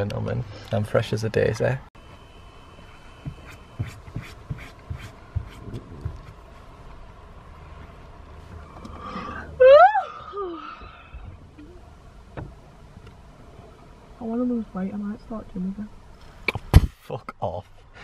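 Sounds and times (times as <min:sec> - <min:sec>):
person squealing: 0:09.6 - 0:10.7.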